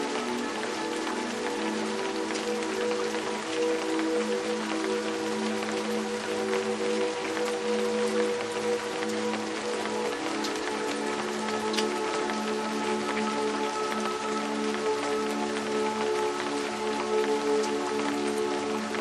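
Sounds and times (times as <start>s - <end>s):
ambient music low notes: 0.0s - 19.0s
steady rain falling: 0.0s - 19.0s.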